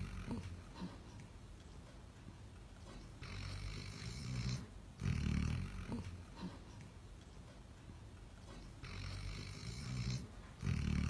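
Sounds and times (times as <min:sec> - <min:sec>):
dog snoring: 0:00.0 - 0:01.1, 0:03.2 - 0:06.6, 0:08.5 - 0:11.0.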